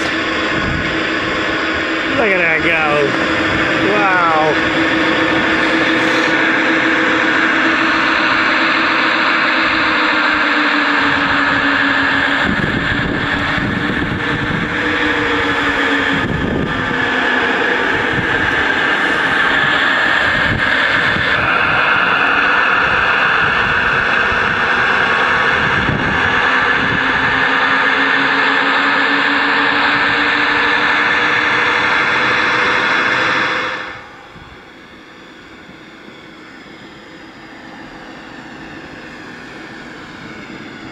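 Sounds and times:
diesel engine through small loudspeaker: 0.0 - 40.9.

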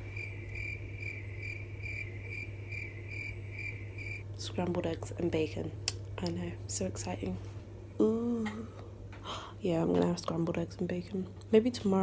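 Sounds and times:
low steady hum: 0.0 - 12.0
cricket chirping: 0.1 - 4.3.

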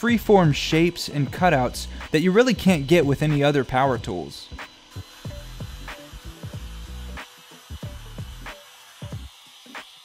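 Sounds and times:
background music with beat: 0.0 - 9.9
palm router cutting wood: 0.0 - 10.0.

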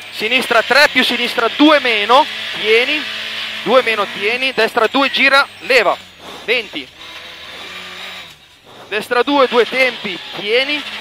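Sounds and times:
rally car engine: 0.0 - 11.0.

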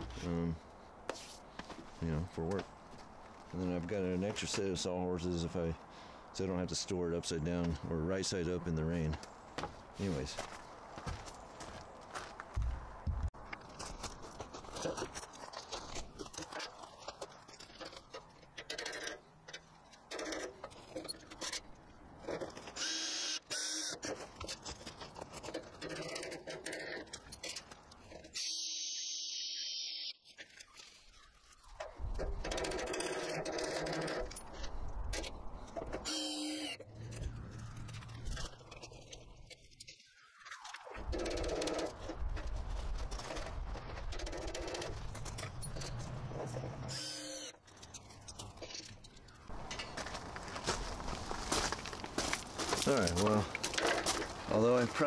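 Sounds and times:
handling noises: 9.0 - 22.8, 47.6 - 55.0.

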